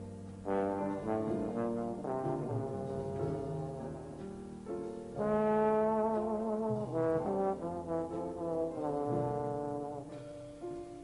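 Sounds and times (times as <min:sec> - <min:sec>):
trombone playing jazz solo: 0:00.4 - 0:04.3, 0:05.2 - 0:10.4.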